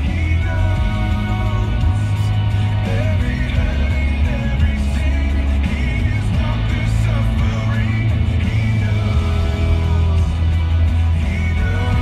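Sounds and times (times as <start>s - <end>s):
song on car radio: 0.0s - 12.0s.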